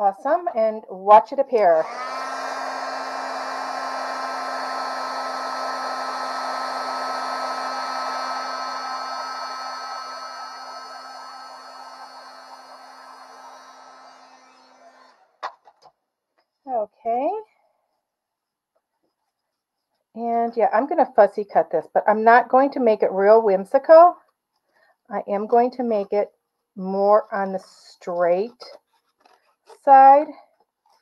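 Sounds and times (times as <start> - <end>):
heat gun blowing air: 1.7 - 15.3
motor hum: 1.8 - 15.3.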